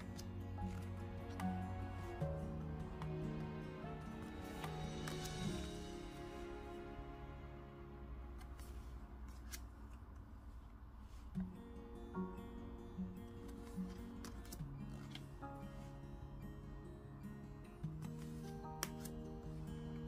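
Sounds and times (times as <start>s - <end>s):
soft background music: 0.0s - 20.0s
cards sliding clicks: 18.2s - 19.2s.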